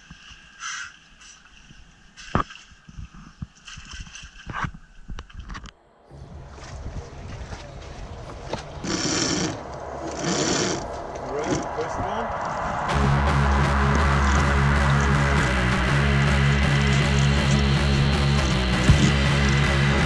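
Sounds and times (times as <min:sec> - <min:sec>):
voices: 0:06.7 - 0:12.9
rushing noise: 0:08.8 - 0:20.0
music with bass and guitar: 0:12.9 - 0:20.0.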